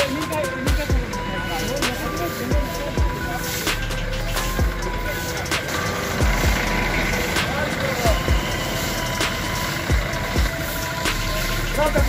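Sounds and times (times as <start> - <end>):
brooms scraping wet road: 0.0 - 12.0
truck engine running: 0.0 - 12.0.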